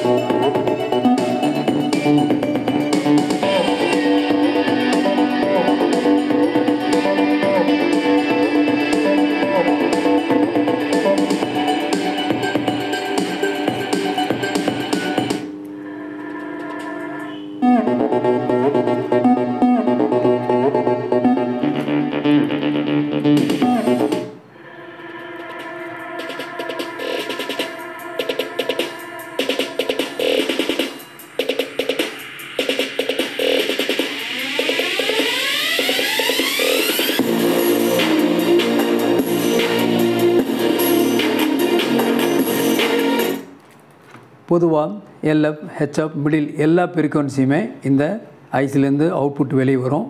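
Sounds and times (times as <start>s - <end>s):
guitar and electronic music: 0.0s - 15.6s, 16.4s - 43.6s.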